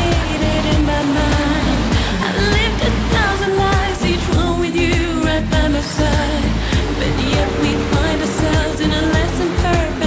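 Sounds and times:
pop song with singing: 0.0s - 10.0s.

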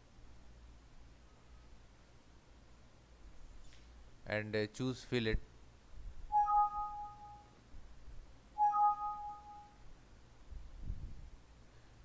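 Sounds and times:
two-note rising alert chime: 6.3s - 7.4s, 8.6s - 9.7s.

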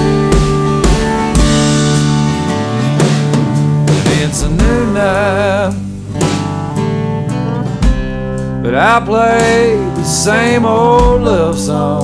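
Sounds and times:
pedal steel guitar sliding: 0.0s - 11.6s
drum kit steady beat: 0.0s - 12.0s
strummed acoustic guitar: 0.0s - 12.0s.

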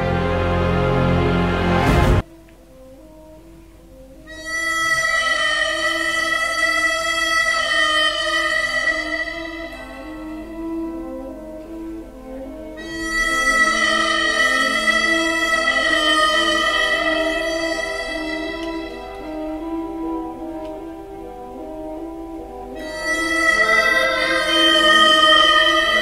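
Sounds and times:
harmonica playing: 4.2s - 26.0s.

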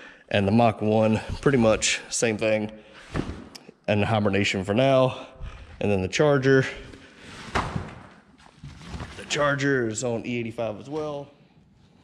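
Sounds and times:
fabric cover rustling: 7.1s - 9.7s.

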